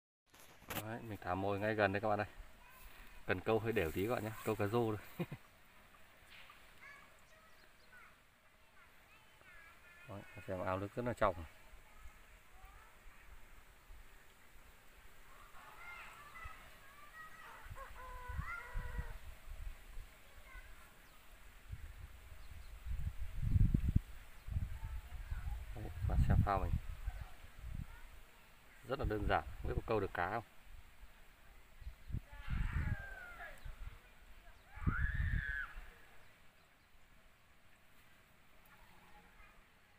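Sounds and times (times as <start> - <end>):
distant animal calls: 15.3 - 19.2.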